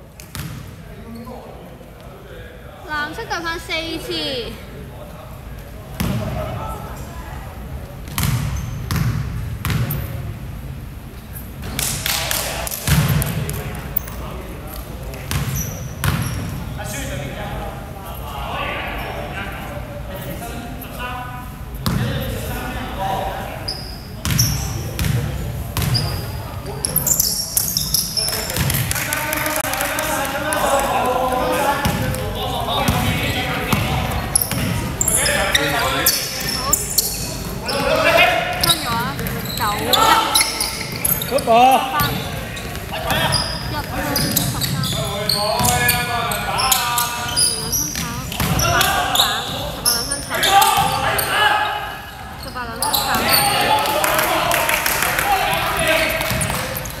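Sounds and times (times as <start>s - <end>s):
basketball bouncing on wooden floor: 47.9s - 48.7s.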